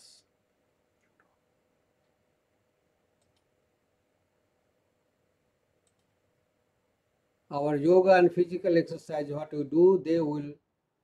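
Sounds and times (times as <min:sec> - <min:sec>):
faint steady hum: 0:00.0 - 0:11.0
faint short clicks: 0:03.2 - 0:03.5, 0:05.8 - 0:06.1.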